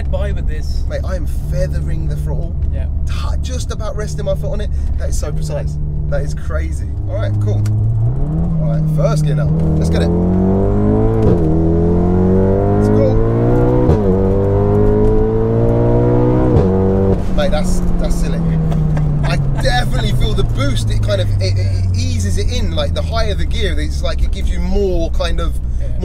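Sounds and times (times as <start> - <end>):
car engine accelerating: 0.0 - 26.0.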